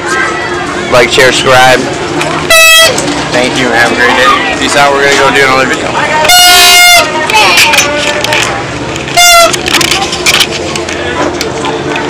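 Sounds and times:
toy horn honk: 9.1s - 9.6s.

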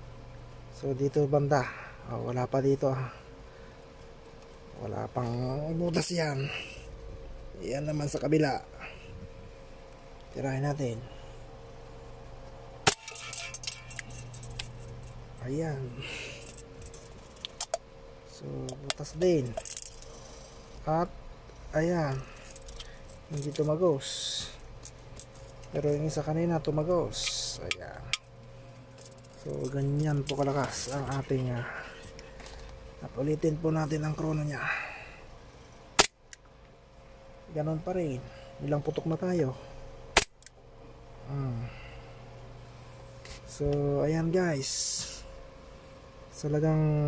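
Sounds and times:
steady low hum: 0.0s - 47.0s
small clicks and rattles: 18.8s - 20.8s, 22.4s - 23.8s, 28.9s - 31.3s.

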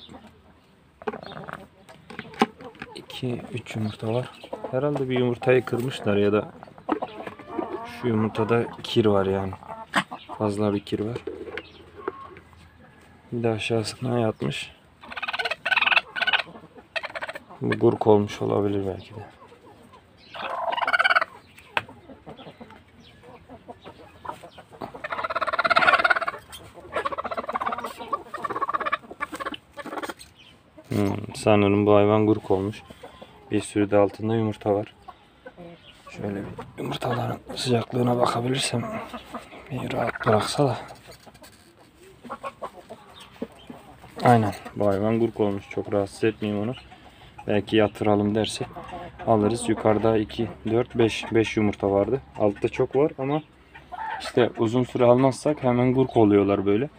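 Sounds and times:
hen clucking quietly: 0.0s - 56.9s.

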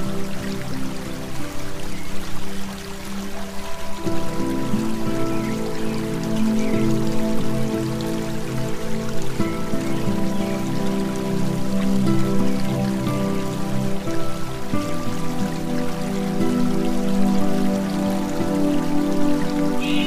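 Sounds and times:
calm new-age music: 0.0s - 20.0s
rain pattering: 0.0s - 20.0s.

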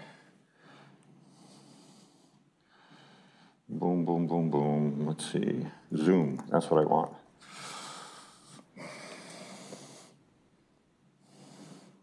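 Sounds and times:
faint breathing-like hiss: 0.0s - 3.8s, 7.1s - 12.0s.

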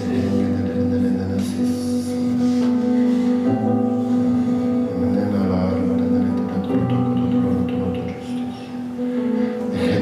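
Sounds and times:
sustained keyboard chords: 0.0s - 10.0s.

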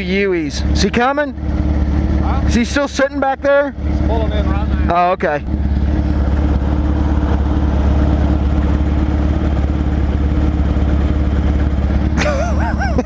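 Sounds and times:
motorcycle engine idling: 0.0s - 13.0s.

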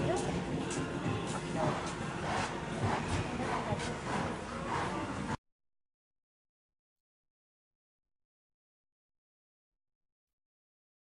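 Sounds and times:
horse hooves cantering on sand: 0.0s - 5.3s
faint music: 0.0s - 5.4s
indistinct background voices: 0.0s - 5.4s.

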